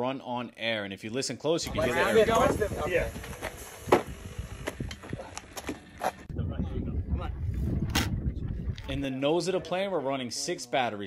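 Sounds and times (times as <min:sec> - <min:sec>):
low rumble: 0:06.2 - 0:09.0.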